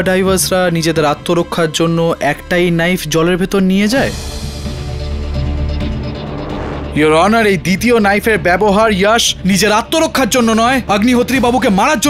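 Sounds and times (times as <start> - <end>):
low drone score: 2.1 - 8.2.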